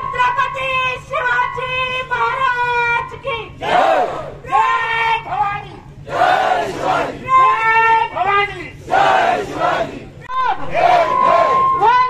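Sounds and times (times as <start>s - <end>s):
woman calling out slogan: 0.0s - 3.7s, 4.4s - 5.9s, 7.2s - 8.8s, 10.2s - 10.7s, 11.6s - 12.0s
crowd shouting together: 3.6s - 4.8s, 6.1s - 7.8s, 8.8s - 12.0s.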